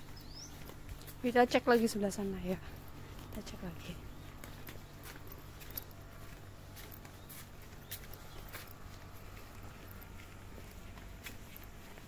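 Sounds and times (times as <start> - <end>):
footsteps on stone path: 0.0 - 12.0
low steady hum: 0.0 - 12.0.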